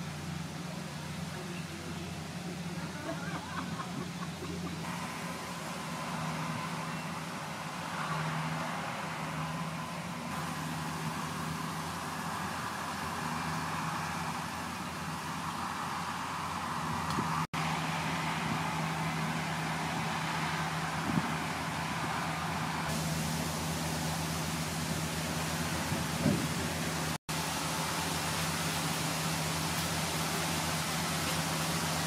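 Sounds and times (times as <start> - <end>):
distant traffic hiss and hum: 0.0 - 32.0.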